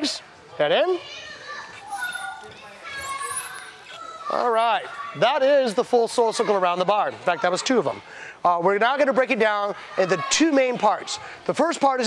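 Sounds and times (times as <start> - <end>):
children's voices chattering: 0.0 - 12.0
faint high squeak: 1.8 - 4.3.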